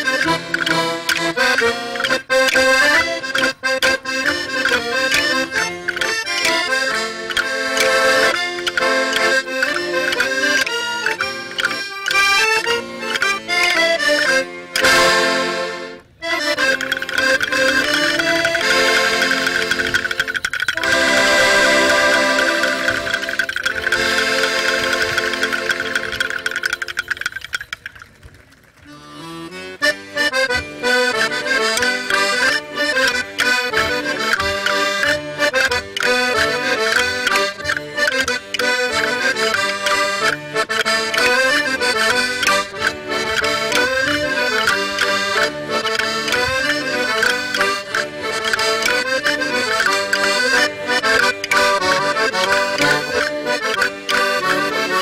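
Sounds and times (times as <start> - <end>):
accordion folk music: 0.0 - 55.0.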